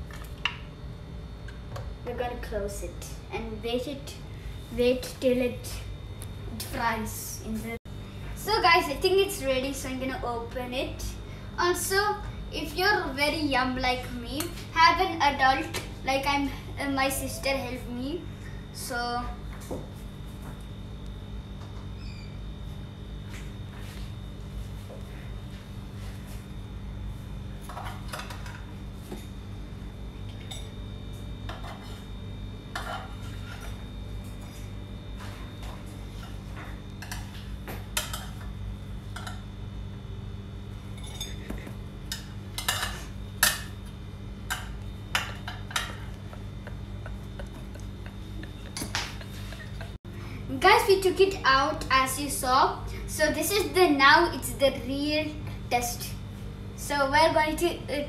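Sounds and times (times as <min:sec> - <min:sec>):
steady low hum: 0:00.0 - 0:58.0
utensil clinking on plates: 0:41.0 - 0:43.8.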